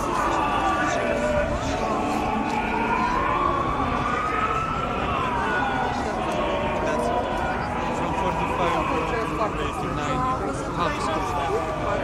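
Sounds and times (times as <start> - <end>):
crowd chatter: 0.0 - 12.0
siren wailing: 0.0 - 12.0.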